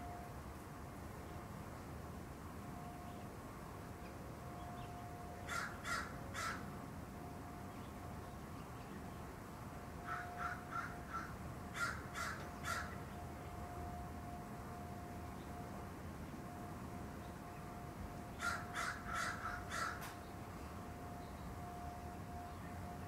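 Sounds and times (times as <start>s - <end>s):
crow cawing: 5.5s - 6.6s, 10.0s - 13.0s, 18.4s - 20.2s.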